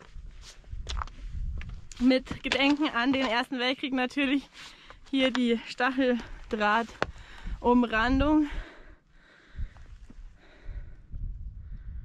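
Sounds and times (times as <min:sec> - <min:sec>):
wind rumbling on microphone: 0:00.0 - 0:03.4, 0:05.5 - 0:12.0.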